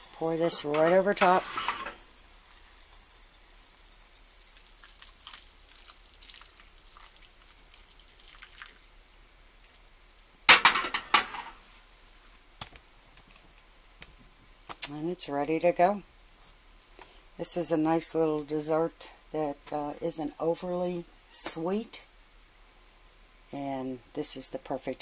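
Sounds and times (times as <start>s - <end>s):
syrup trickling and dripping: 2.4s - 9.8s.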